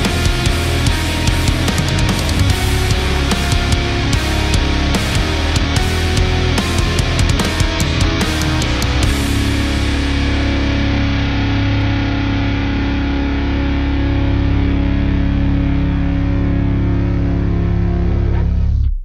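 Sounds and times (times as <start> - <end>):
distorted electric guitar chord: 0.0 - 18.9.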